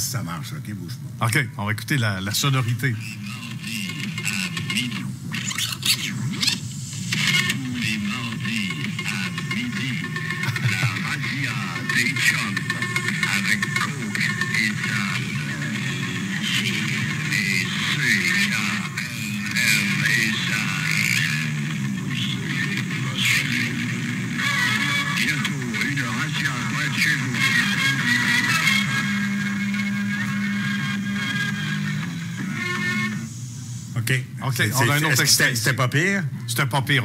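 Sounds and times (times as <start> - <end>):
old radio recording of music: 0.0 - 37.0
voices on radio: 0.0 - 37.0.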